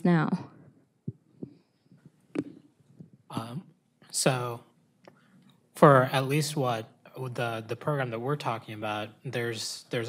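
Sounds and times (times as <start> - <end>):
soft low thumps: 0.5 - 3.6.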